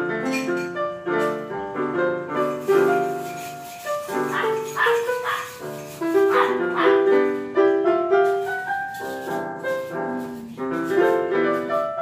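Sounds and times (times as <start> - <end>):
electronic keyboard piano melody: 0.0 - 12.0.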